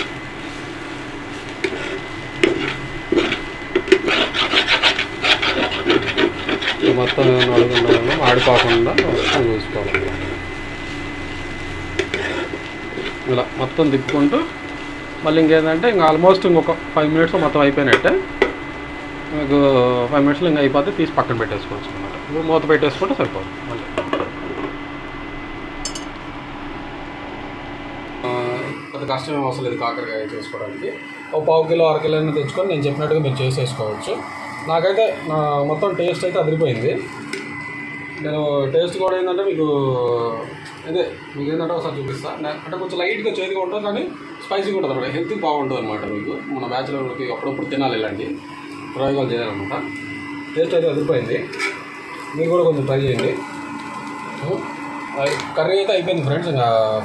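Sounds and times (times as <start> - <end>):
pan cooking hiss and hum: 0.0 - 57.0
spatula scraping frying pan: 1.3 - 13.3, 51.4 - 52.3
man talking: 6.8 - 10.2, 13.2 - 14.6, 15.2 - 18.3, 19.3 - 23.9, 28.2 - 37.1, 38.2 - 49.9, 52.3 - 53.4, 54.4 - 57.0.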